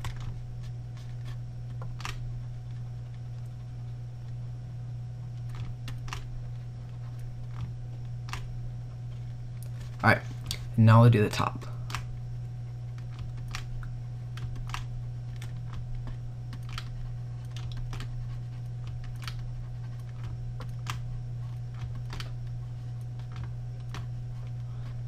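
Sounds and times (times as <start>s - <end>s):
steady low hum: 0.0s - 25.0s
mouse and keyboard clicking: 13.0s - 22.4s.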